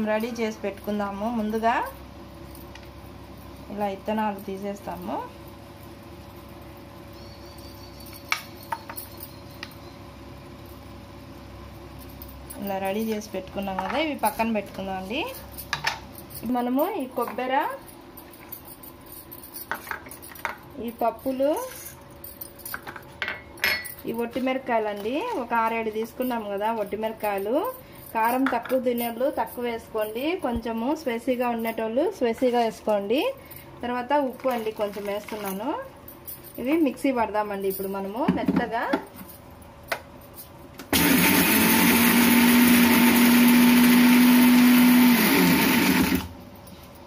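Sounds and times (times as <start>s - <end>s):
glass bowl and steel cup clinking: 22.7s - 24.1s
mixer grinder motor hum: 40.9s - 46.4s
loud grinding noise: 41.0s - 46.3s.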